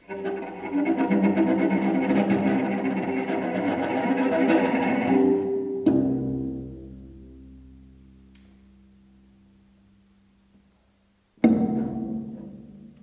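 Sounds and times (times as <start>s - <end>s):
low string instrument scraping: 0.0s - 5.6s.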